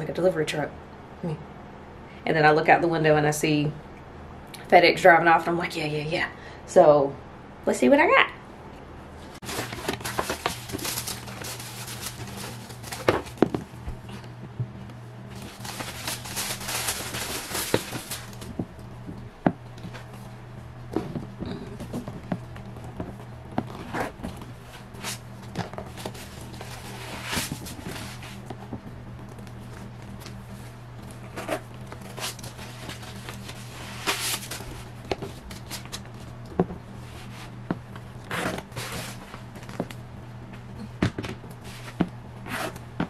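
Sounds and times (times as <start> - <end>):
tissue paper rustling: 9.4 - 14.2, 15.3 - 18.6, 25.8 - 28.5, 29.6 - 36.0, 38.6 - 39.5.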